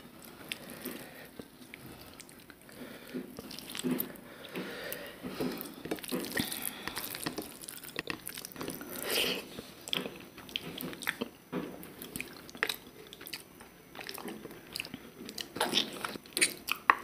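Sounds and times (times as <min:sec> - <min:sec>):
person chewing food: 0:00.1 - 0:17.0.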